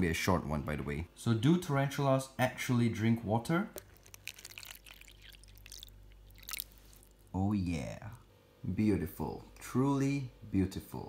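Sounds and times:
water trickling into plastic dish: 0:03.7 - 0:07.3.

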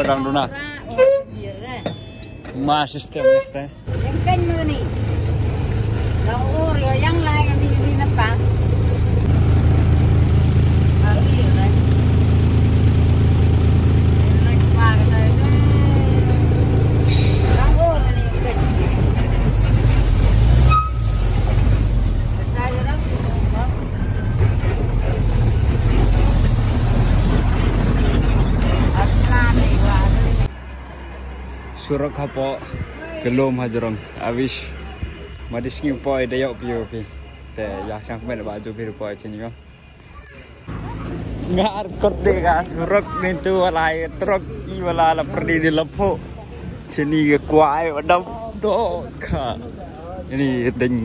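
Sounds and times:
voices talking: 0:00.0 - 0:51.0
truck engine running: 0:03.9 - 0:30.5.

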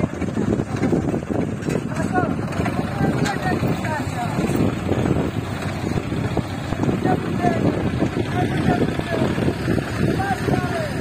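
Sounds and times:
tractor diesel engine rumbling: 0:00.0 - 0:11.0.

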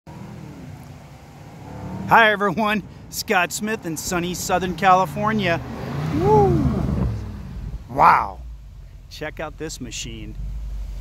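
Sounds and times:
car exhaust low hum approaching: 0:00.1 - 0:11.0.

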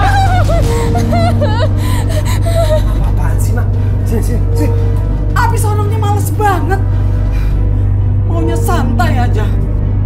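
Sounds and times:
woman gasping and crying out: 0:00.0 - 0:02.9
dramatic low drone music: 0:00.0 - 0:10.0.

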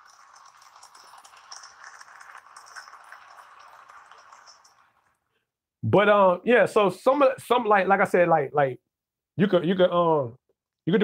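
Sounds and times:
faint hiss with crackle: 0:00.0 - 0:05.4.

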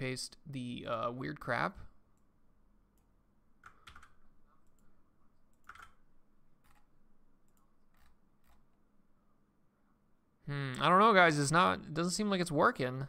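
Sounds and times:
computer keyboard and mouse clicks: 0:03.0 - 0:04.9, 0:05.5 - 0:08.7.

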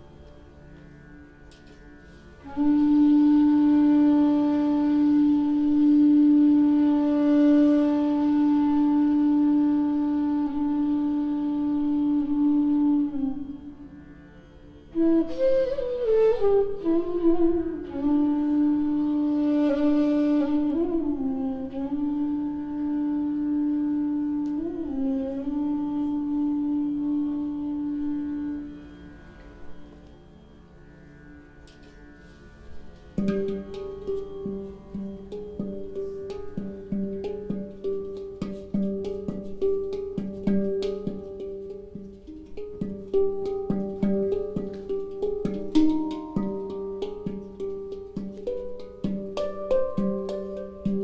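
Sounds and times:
bamboo flute long low note: 0:02.1 - 0:31.1, 0:32.2 - 0:51.0
hang drum notes: 0:33.2 - 0:51.0.

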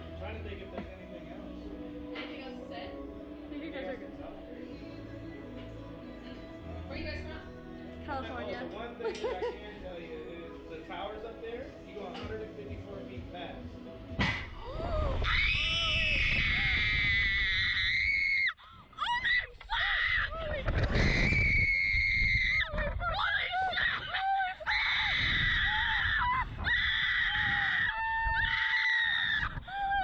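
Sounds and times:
wind over microphone: 0:14.5 - 0:18.1, 0:18.7 - 0:24.2, 0:25.0 - 0:28.6, 0:29.2 - 0:30.0
women screaming: 0:14.6 - 0:30.0.

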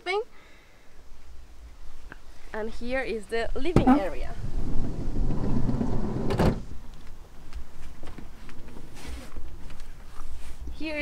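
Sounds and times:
van sliding door rumbling open: 0:03.8 - 0:06.8
sliding door clack: 0:04.6 - 0:06.6.

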